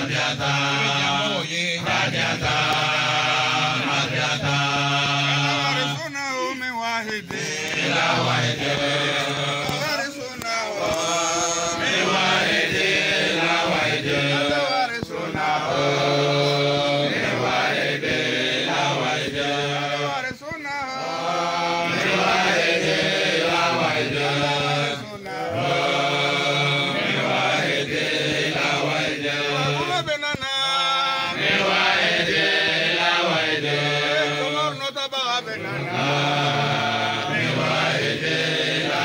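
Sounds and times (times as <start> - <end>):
man chanting into a microphone: 0.0 - 7.7, 13.7 - 16.9, 23.8 - 25.6, 29.4 - 31.2
men chanting: 0.0 - 39.0.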